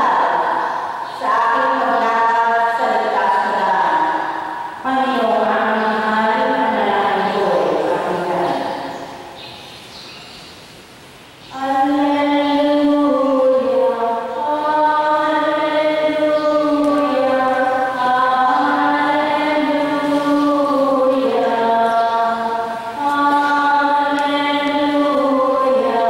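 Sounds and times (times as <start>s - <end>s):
person singing a hymn: 0.0s - 9.0s, 11.5s - 26.0s.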